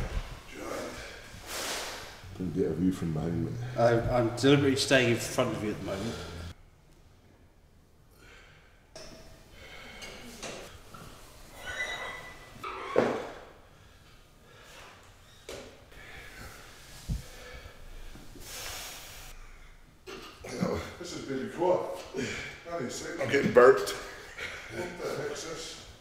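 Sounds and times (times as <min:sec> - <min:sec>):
man breathing: 0:00.1 - 0:02.4, 0:03.2 - 0:04.5, 0:05.2 - 0:06.6, 0:08.1 - 0:10.9, 0:13.6 - 0:15.1, 0:15.8 - 0:20.0.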